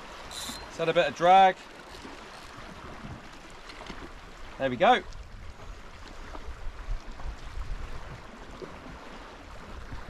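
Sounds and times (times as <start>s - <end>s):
sea water lapping against rocks: 0.0s - 10.0s
wind rumbling on microphone: 2.0s - 10.0s.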